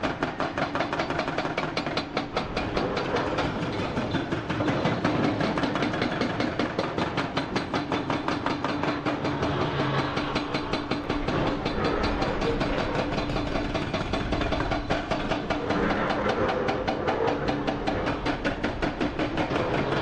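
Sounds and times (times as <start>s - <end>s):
hydraulic breaker hammering rock: 0.0s - 20.0s.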